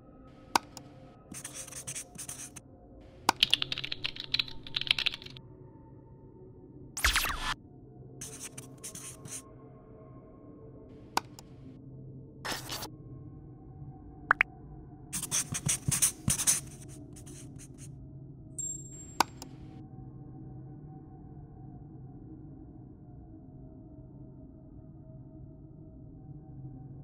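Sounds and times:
keyboard typing: 0:00.6 - 0:02.6, 0:03.3 - 0:05.4, 0:08.2 - 0:09.4, 0:11.2 - 0:11.5, 0:12.5 - 0:12.9, 0:15.2 - 0:17.9, 0:19.2 - 0:19.6
marker pen writing on whiteboard: 0:00.6 - 0:02.6, 0:03.3 - 0:05.4, 0:08.2 - 0:09.4, 0:11.2 - 0:11.5, 0:12.5 - 0:12.9, 0:15.2 - 0:17.9, 0:19.2 - 0:19.6.

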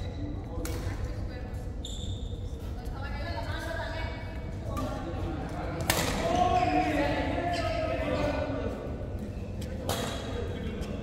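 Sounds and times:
racket hitting shuttlecock: 0:05.8 - 0:06.4.

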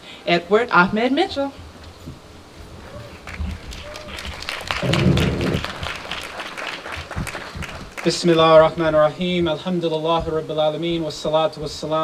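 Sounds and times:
audience applauding: 0:03.1 - 0:08.8.

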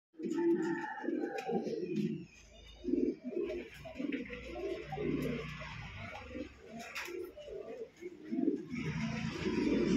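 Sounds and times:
pigeon cooing: 0:00.2 - 0:09.9.

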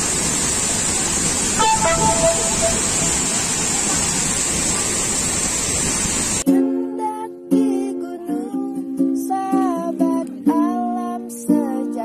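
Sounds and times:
waterfall roaring: 0:00.0 - 0:06.4.

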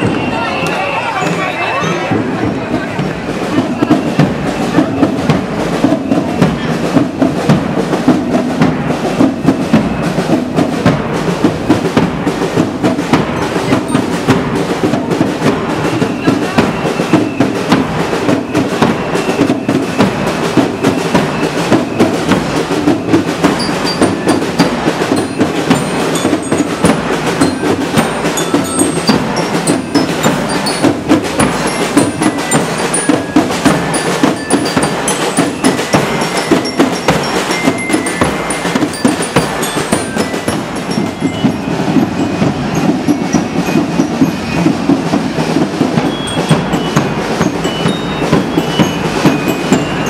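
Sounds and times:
bass and snare drums marching: 0:00.0 - 0:50.0
bell lyre notes: 0:18.6 - 0:50.0.

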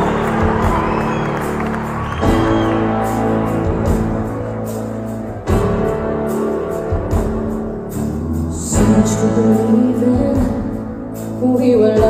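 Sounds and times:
audience cheering and whistling: 0:00.0 - 0:05.1
live band playing chords: 0:00.0 - 0:12.0.

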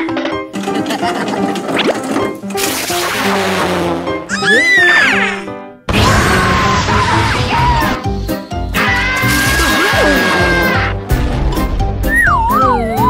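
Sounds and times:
cartoon background music: 0:00.0 - 0:13.0.

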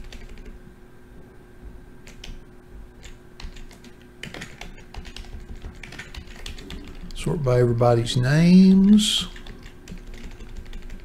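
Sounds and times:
faint electrical hum: 0:00.0 - 0:11.0
keyboard keys clicking: 0:03.0 - 0:07.2, 0:09.3 - 0:11.0.

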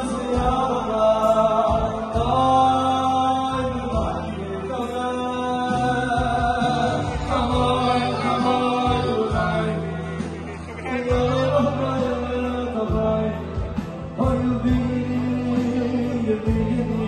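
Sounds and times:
electronic keyboard accompaniment: 0:00.0 - 0:17.0
men singing: 0:00.0 - 0:17.0.

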